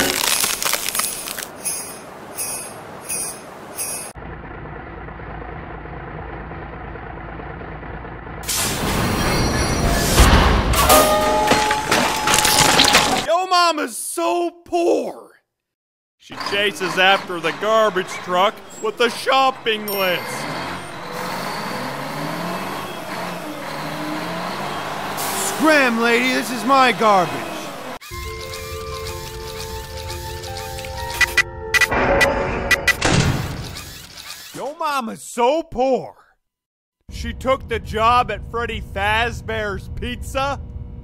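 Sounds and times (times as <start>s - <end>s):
garbage truck engine rumbling: 2.0s - 13.3s, 16.3s - 31.1s.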